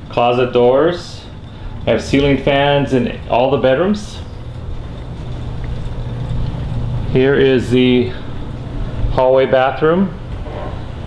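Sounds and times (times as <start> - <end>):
low hum: 0.0 - 11.0
rumbling hiss: 0.0 - 11.0.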